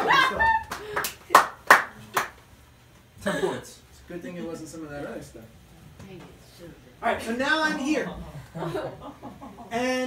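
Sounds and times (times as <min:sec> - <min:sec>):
hand claps: 0:00.0 - 0:02.4.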